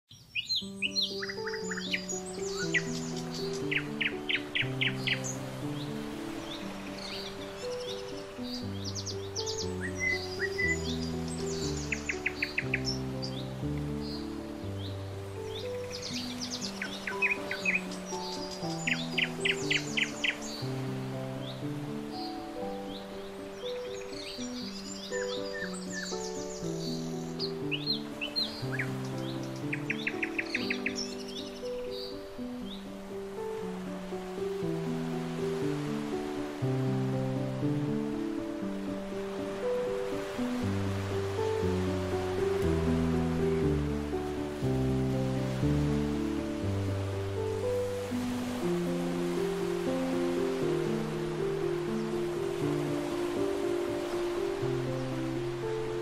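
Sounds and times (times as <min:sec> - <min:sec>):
birdsong chirps and trills: 0:00.1 - 0:56.0
slow background music chords: 0:00.7 - 0:56.0.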